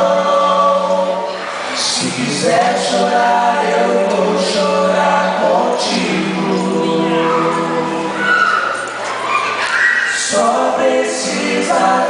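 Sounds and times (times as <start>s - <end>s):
men singing a worship song: 0.0s - 8.2s, 10.1s - 12.0s.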